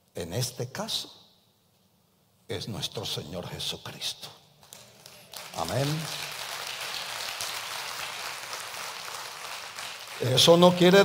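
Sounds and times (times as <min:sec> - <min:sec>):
congregation applauding: 0:04.6 - 0:11.0.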